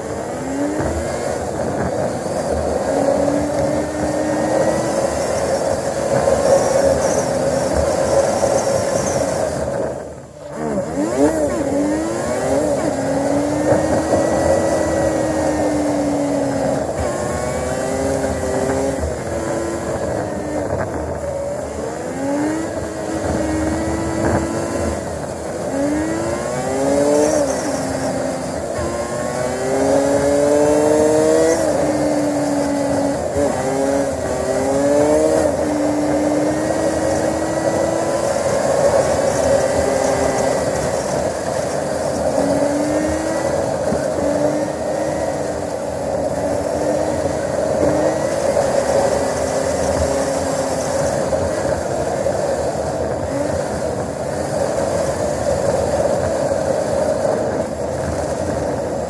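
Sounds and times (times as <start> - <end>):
vehicle engine accelerating: 0.0 - 59.0
wind and road rush: 0.0 - 59.0.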